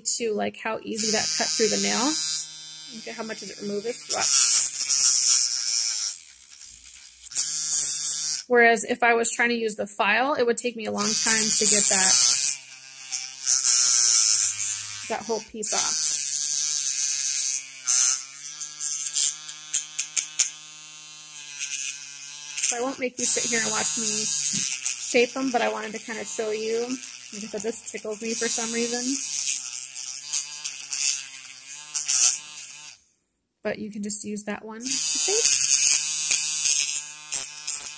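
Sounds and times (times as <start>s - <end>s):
faint motor buzz: 0.9s - 8.5s, 10.8s - 33.0s, 34.8s - 37.9s
nail drill grinding scratch: 0.9s - 8.5s, 10.8s - 33.0s, 34.8s - 37.9s.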